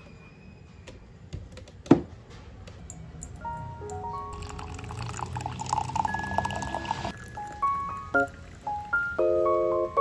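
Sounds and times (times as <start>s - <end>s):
coffee pouring into mug: 4.3s - 8.9s.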